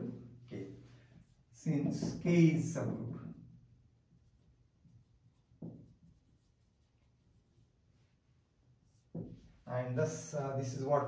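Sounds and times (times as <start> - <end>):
marker writing on whiteboard: 1.1 - 2.3, 3.9 - 9.6.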